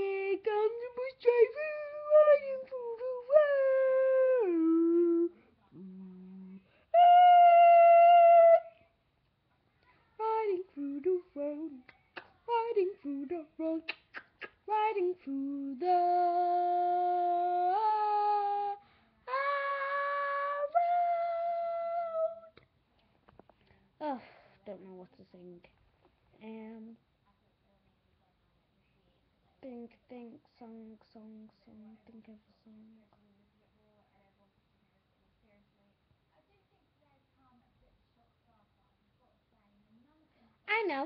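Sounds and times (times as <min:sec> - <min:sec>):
girl singing without words: 0:00.0 - 0:09.0, 0:09.8 - 0:22.6.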